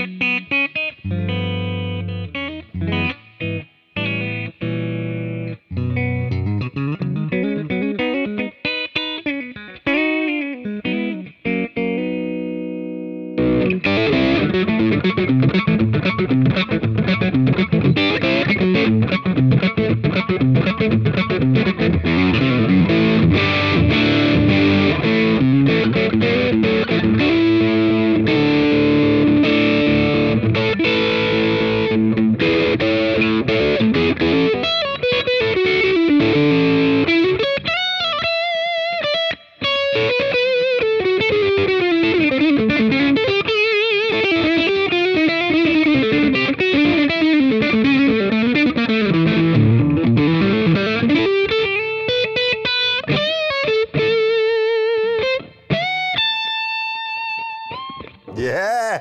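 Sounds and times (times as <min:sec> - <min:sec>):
overdriven electric guitar: 0:00.0 - 0:57.0.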